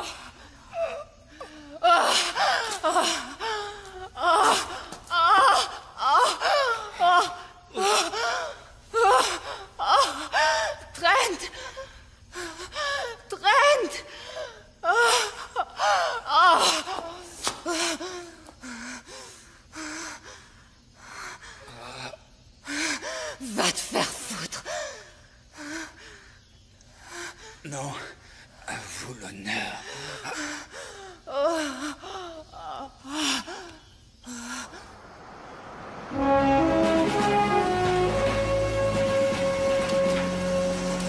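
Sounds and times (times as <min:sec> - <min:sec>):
music: 0:36.1 - 0:41.0.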